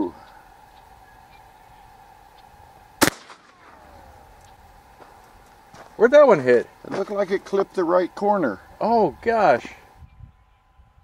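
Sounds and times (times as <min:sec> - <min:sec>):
shotgun shot: 0:03.0 - 0:04.1
faint falling tone: 0:03.4 - 0:04.6.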